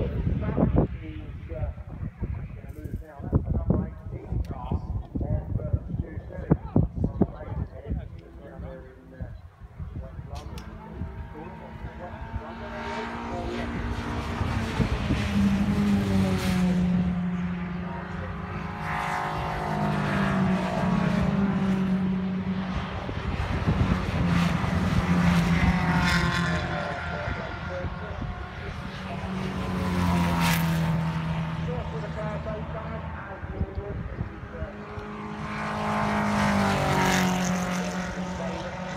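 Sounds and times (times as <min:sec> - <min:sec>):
race cars passing: 0:00.0 - 0:38.9.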